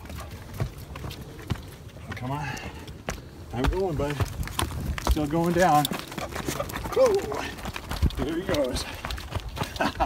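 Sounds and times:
footsteps on wooden steps: 0:00.0 - 0:10.0.

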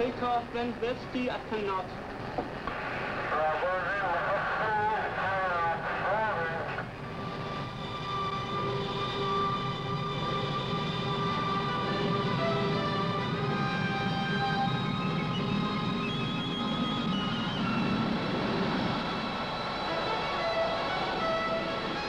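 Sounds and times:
voice over two-way radio: 0:03.3 - 0:06.8.

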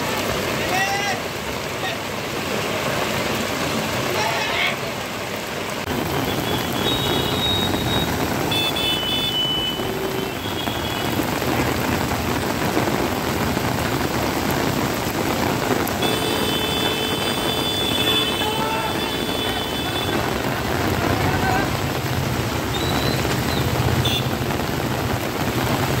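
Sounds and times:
heavy rain and running water: 0:00.0 - 0:26.0
road traffic: 0:00.0 - 0:26.0
vehicle horns: 0:06.2 - 0:11.2, 0:16.0 - 0:20.5, 0:22.7 - 0:24.4.

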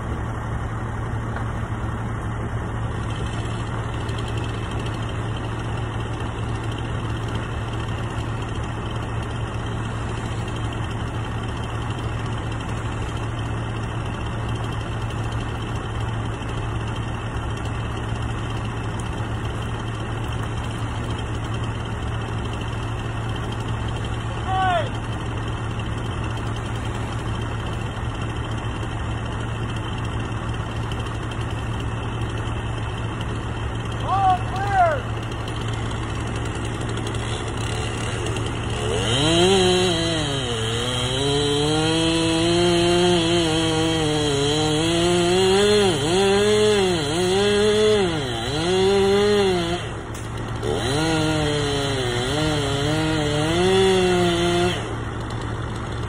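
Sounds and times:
large engine idling: 0:00.0 - 0:42.4, 0:43.0 - 0:53.0, 0:53.8 - 0:56.0.

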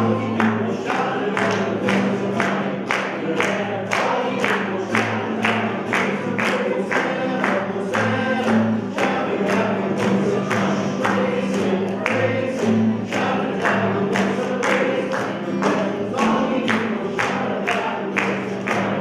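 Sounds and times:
group singing worship song: 0:00.0 - 0:19.0
hand claps: 0:00.0 - 0:19.0
strummed acoustic guitar: 0:00.0 - 0:19.0.

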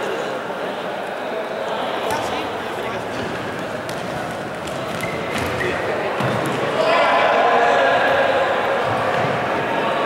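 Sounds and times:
players shouting in echoing hall: 0:00.1 - 0:10.0
ball bouncing on wooden floor: 0:03.1 - 0:06.6.

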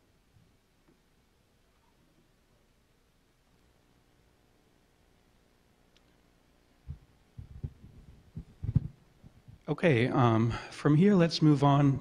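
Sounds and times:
microphone handling thumps: 0:06.9 - 0:09.7.

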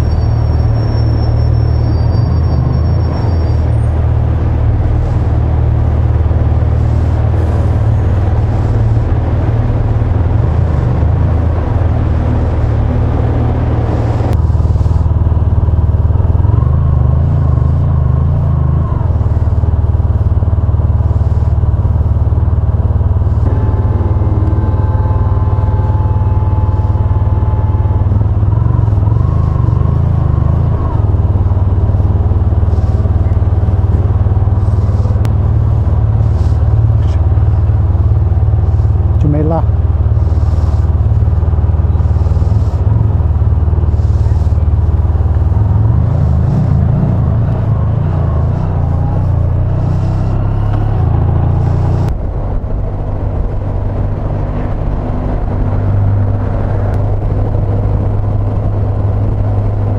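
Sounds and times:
brief rising squeak: 0:00.0 - 0:03.7
motorcycle engine rumbling: 0:00.0 - 0:59.9.

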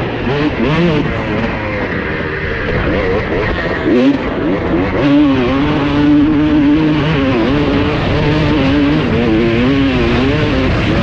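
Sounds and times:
two-stroke engine running hard: 0:00.0 - 0:11.0.

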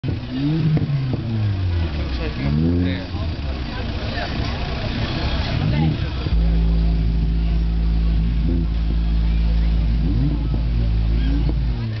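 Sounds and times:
gliding bass notes from subwoofers: 0:00.0 - 0:12.0
very loud steady low bass tone: 0:00.0 - 0:12.0.

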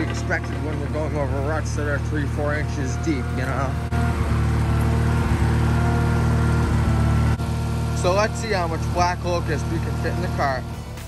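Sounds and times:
tractor engine idling: 0:00.0 - 0:11.0.

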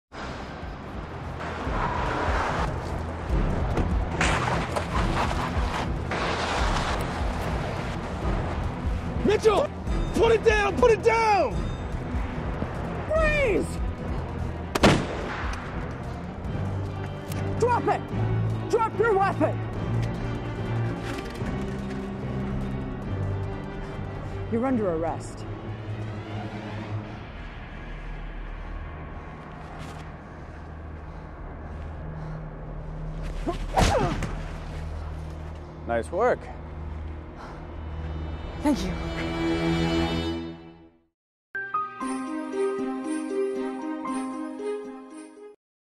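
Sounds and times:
dramatic music score: 0:00.2 - 0:45.6.

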